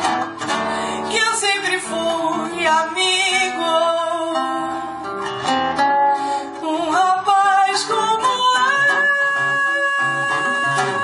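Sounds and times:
classical guitar: 0:00.0 - 0:11.0
woman singing slow melody: 0:01.0 - 0:04.8, 0:06.5 - 0:11.0.

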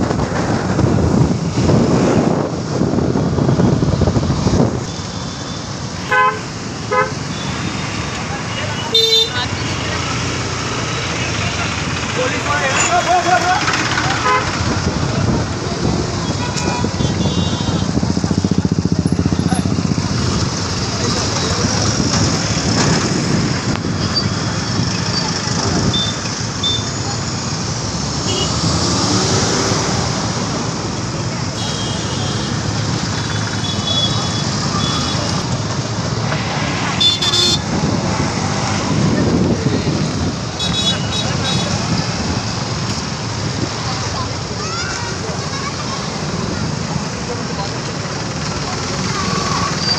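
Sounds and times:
busy road traffic: 0:00.0 - 0:49.9
vehicle horn toots: 0:06.0 - 0:07.6, 0:31.6 - 0:32.6, 0:37.0 - 0:37.6
crowd voices: 0:06.0 - 0:49.9.

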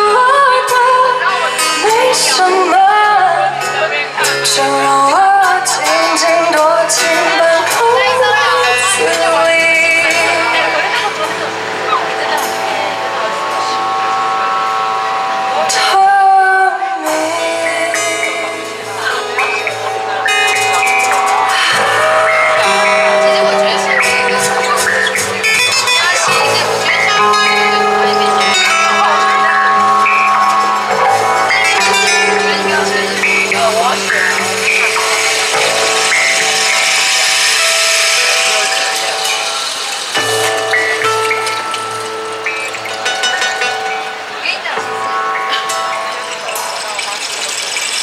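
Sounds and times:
person singing: 0:00.0 - 0:12.6, 0:15.6 - 0:42.0
live band playing slow song: 0:00.0 - 0:48.0
rainstick trickling: 0:17.6 - 0:48.0.

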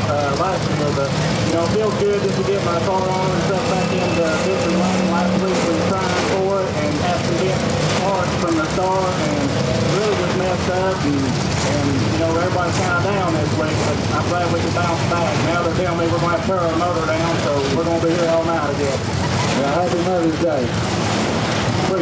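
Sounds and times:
person talking: 0:00.0 - 0:20.7
race car engines rumbling: 0:00.0 - 0:22.0.

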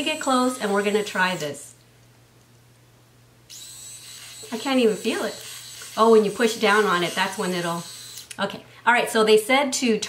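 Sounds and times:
small motor whining: 0:00.0 - 0:01.6, 0:03.5 - 0:08.3.

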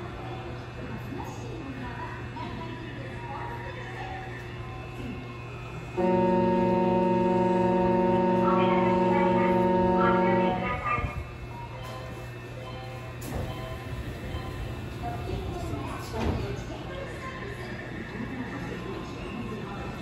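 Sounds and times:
low background hum: 0:00.0 - 0:20.0
horn chord: 0:06.0 - 0:10.8.

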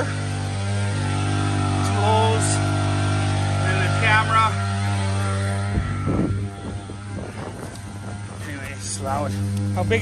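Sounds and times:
ice auger engine running: 0:00.0 - 0:10.0.

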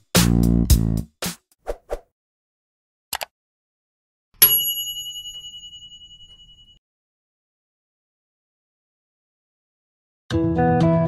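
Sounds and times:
bright bell ding: 0:04.4 - 0:06.8.

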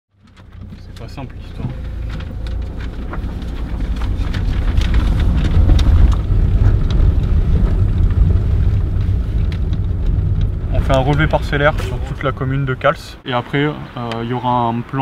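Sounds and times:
knocks and rattles: 0:00.1 - 0:12.6
car rumbling on dirt track: 0:00.1 - 0:14.2.

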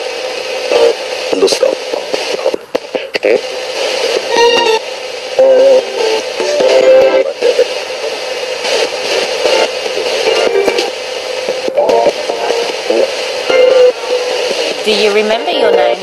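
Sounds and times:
radio scanning stations: 0:00.0 - 0:16.0
snippets of broadcast music: 0:00.0 - 0:16.0
static hiss: 0:00.0 - 0:16.0
radio voices: 0:00.2 - 0:16.0.

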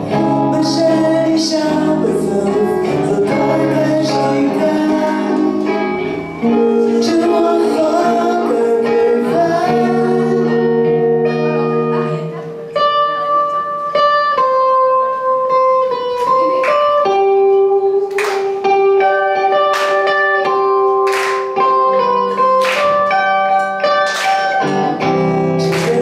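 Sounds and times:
electric guitar lead melody: 0:00.0 - 0:26.0.

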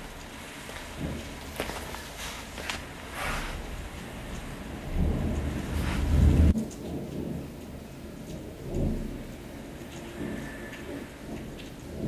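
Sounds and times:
steady rain: 0:00.0 - 0:12.0
thunder rumbling: 0:00.0 - 0:12.0.

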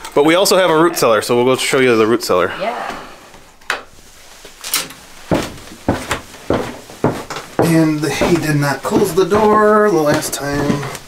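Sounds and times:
footsteps going down stairs: 0:03.9 - 0:11.0.

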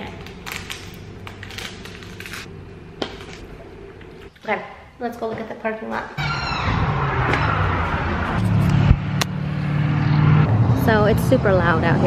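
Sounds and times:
road traffic engine drone: 0:06.2 - 0:12.0.

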